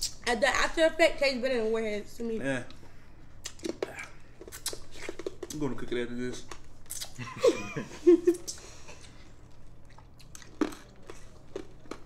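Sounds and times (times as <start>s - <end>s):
mouth sucking and chewing candy: 3.4s - 5.6s, 6.8s - 7.2s.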